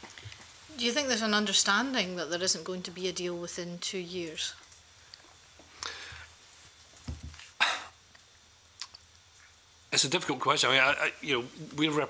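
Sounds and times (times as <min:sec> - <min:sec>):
person coughing: 0:07.6 - 0:08.0.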